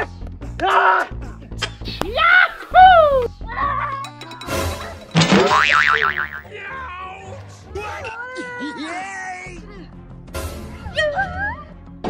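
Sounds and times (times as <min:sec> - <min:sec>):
background music: 0:01.2 - 0:06.8
sliding pitch effects: 0:04.2 - 0:06.5
fast wobbling boing: 0:04.3 - 0:06.5.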